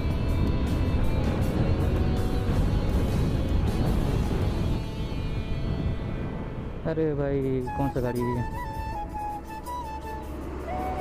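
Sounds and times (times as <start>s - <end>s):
motorcycle engine rumble: 0.0s - 7.8s
slow melody background music: 0.0s - 11.0s.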